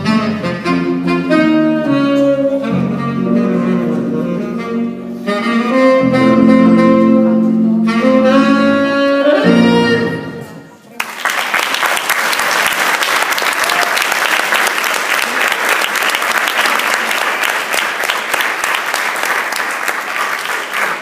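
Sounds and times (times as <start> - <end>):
audience applause: 11.0 - 21.0.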